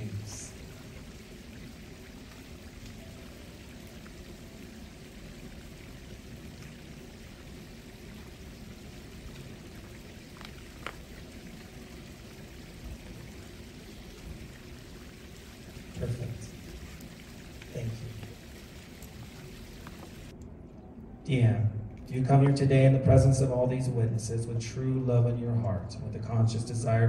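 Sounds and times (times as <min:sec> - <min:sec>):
running water rushing: 0:00.0 - 0:21.2.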